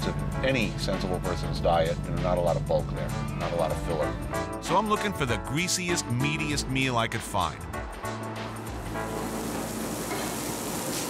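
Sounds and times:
food sizzling on a griddle: 8.5 - 11.0.

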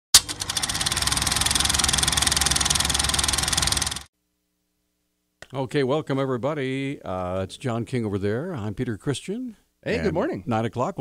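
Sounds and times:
rapid engine-like rattle: 0.2 - 4.1.

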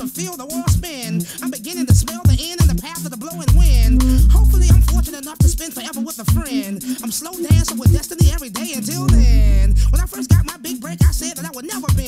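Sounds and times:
rapping over a beat: 0.0 - 12.0
deep bass note: 3.5 - 5.1, 9.1 - 10.0.

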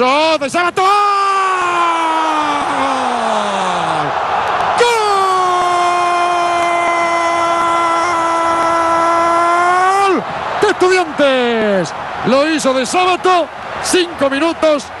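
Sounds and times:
stadium crowd noise: 0.0 - 15.0
commentator screaming goal: 4.8 - 13.3.

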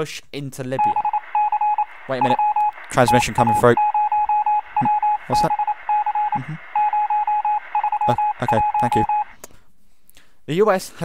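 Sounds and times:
radio static: 0.8 - 9.3
morse code beeps: 0.8 - 9.4.

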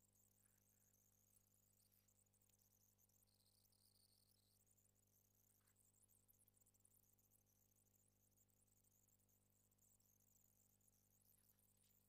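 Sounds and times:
faint steady hum and hiss: 0.0 - 12.0.

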